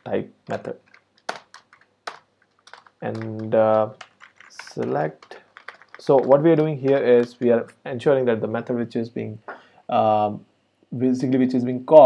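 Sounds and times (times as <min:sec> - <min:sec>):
keyboard key clicks: 0:00.5 - 0:07.4.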